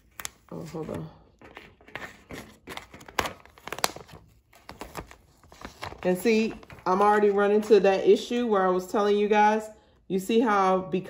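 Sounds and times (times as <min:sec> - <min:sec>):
contact paper crinkling: 0:00.0 - 0:08.6.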